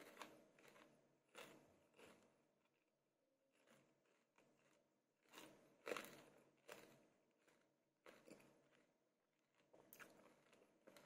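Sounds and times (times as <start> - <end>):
person chewing crisp fruit: 0.0 - 11.0.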